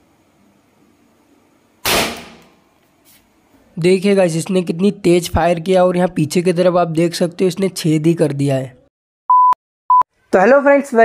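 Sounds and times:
sharp bang of lighter gun: 0:01.8 - 0:02.5.

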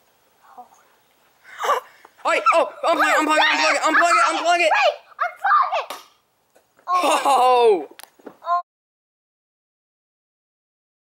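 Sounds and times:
person speaking: 0:00.4 - 0:05.9, 0:06.9 - 0:08.6
excited vocal exclamation: 0:01.6 - 0:05.9, 0:06.9 - 0:08.6.

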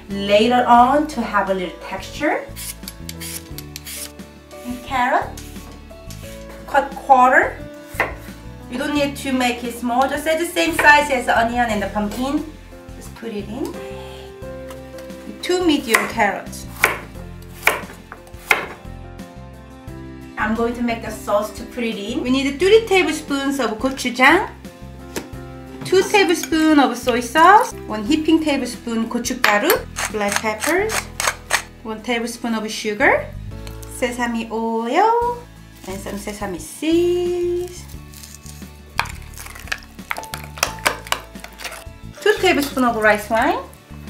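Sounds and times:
background music: 0:00.0 - 0:44.0
knife chopping on cutting board: 0:15.9 - 0:16.2, 0:16.8 - 0:18.8.

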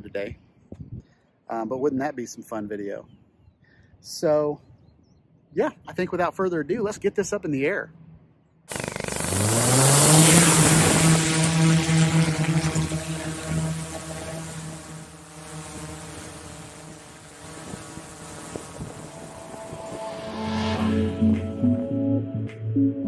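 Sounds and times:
drone propellers whining: 0:08.7 - 0:22.3
background music: 0:19.4 - 0:23.0.

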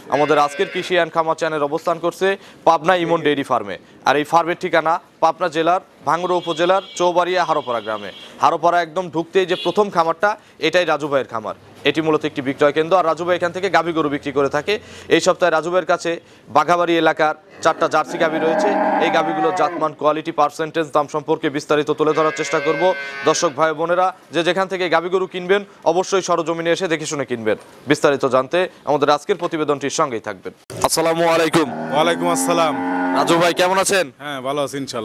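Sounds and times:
cow mooing: 0:00.2 - 0:00.9, 0:17.5 - 0:19.9, 0:22.1 - 0:23.5, 0:31.6 - 0:33.6.

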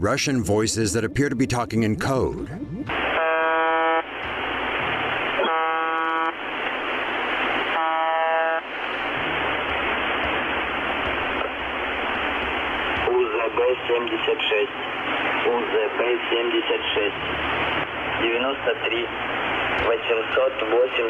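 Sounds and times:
voice speaking through static: 0:00.0 - 0:03.2, 0:13.0 - 0:19.2, 0:19.8 - 0:21.0
radio static: 0:00.0 - 0:21.0
monotonous buzz tone: 0:07.8 - 0:13.0.

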